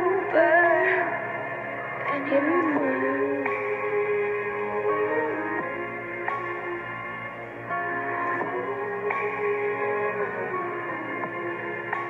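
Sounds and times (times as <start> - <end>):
person singing pop ballad: 0.0 - 12.0
sustained accompaniment chords: 0.0 - 12.0.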